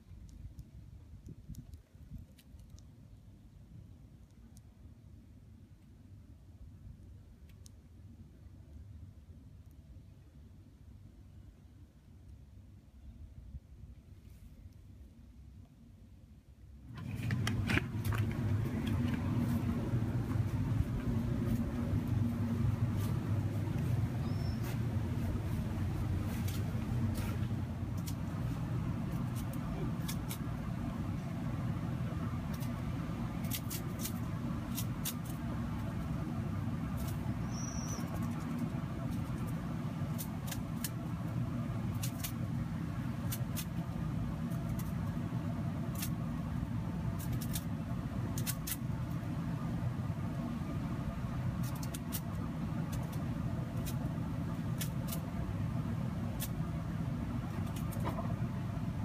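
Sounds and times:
low mechanical hum: 0.0 - 59.0
steady low rumble: 0.0 - 59.0.

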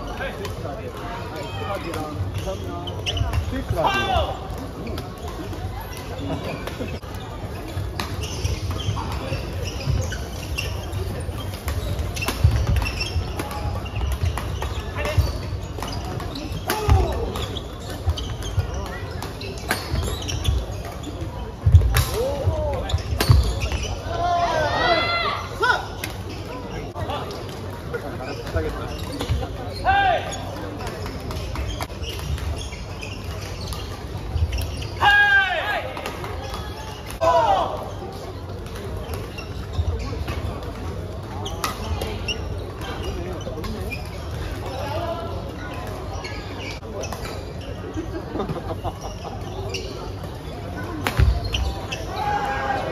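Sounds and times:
chatter of people: 0.0 - 52.9
shoes squeaking on floor: 0.0 - 52.9
voices in echoing hall: 0.0 - 52.9.

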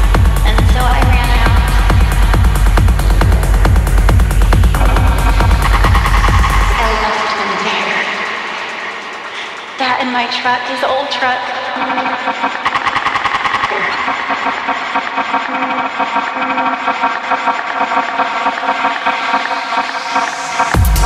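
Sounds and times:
rapid percussive hits: 0.0 - 10.0.

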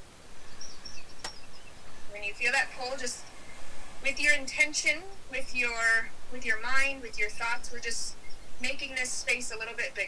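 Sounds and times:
background hiss: 0.0 - 10.0
high bird chirps: 0.3 - 4.4.

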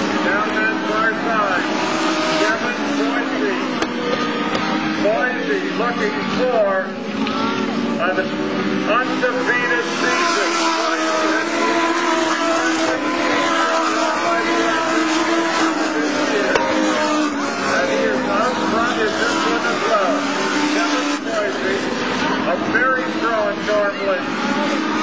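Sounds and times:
race car engines at high revs: 0.0 - 25.0.

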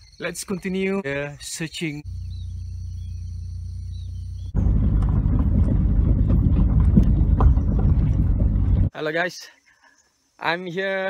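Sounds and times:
high insect-like tones: 0.0 - 4.6
low steady hum: 2.1 - 8.9
tyres rumbling on gravel road: 2.1 - 8.9
stones knocking: 4.6 - 8.9.

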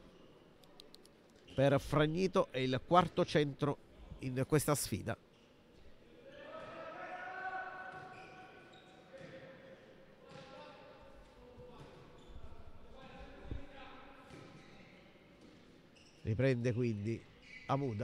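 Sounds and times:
ball bouncing on court: 10.3 - 10.5, 13.4 - 14.7.

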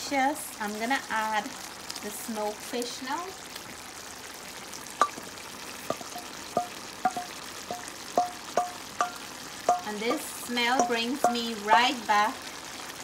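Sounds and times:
pot simmering with hiss: 0.0 - 13.0.

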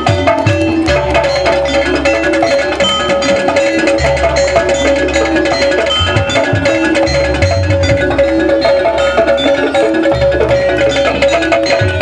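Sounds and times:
gamelan drums: 0.0 - 12.0
held tone: 0.0 - 12.0
tuned mallet percussion: 0.0 - 12.0.

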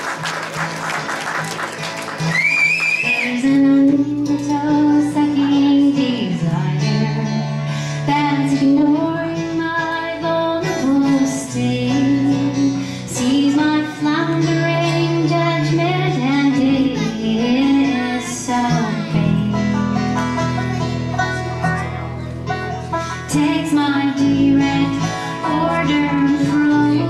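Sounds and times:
electric guitar: 0.0 - 27.0
woman singing: 3.0 - 19.8, 23.0 - 27.0
banjo: 3.2 - 27.0.

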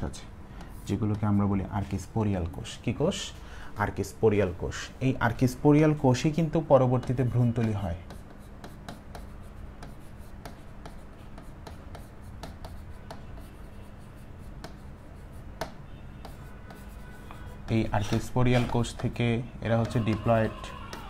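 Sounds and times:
marker scratching on board: 0.6 - 2.0, 6.8 - 21.0
marker tap on board: 7.0 - 13.4, 14.6 - 14.8, 15.6 - 17.0, 18.0 - 19.2.

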